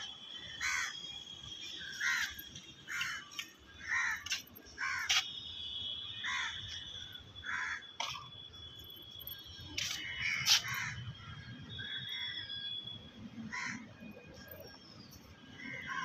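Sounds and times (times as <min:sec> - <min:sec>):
crows cawing: 0:00.5 - 0:01.0, 0:02.0 - 0:02.3, 0:02.9 - 0:04.2, 0:04.8 - 0:05.1, 0:06.2 - 0:06.6, 0:07.4 - 0:07.9, 0:10.0 - 0:11.0, 0:13.5 - 0:13.8.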